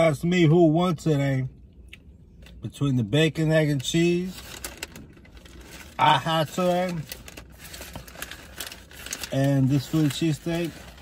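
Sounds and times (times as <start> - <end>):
paper wrapper crinkling: 4.2 - 11.0.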